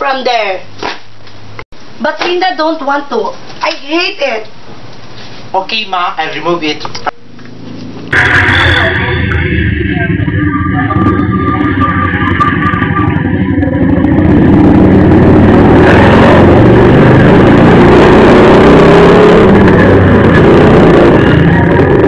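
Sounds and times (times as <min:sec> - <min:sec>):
distorted road traffic noise: 0:00.0 - 0:22.0
engine rising in pitch: 0:07.1 - 0:22.0.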